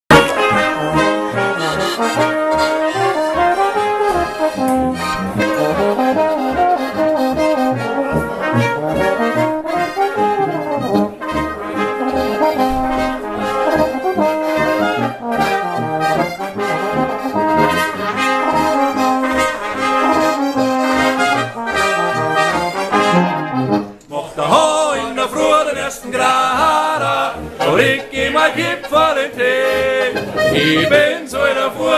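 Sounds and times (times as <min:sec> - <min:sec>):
folk band with accordion: 0:00.1 - 0:31.9
tuba oom-pah beat: 0:00.1 - 0:31.9.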